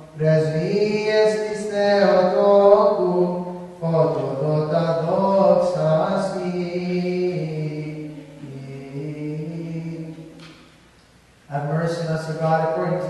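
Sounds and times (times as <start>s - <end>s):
single voice chanting: 0.0s - 10.6s.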